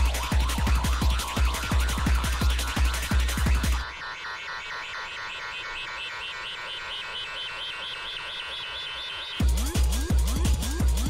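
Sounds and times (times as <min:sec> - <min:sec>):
fast filtered synthesizer line: 0:00.0 - 0:11.0.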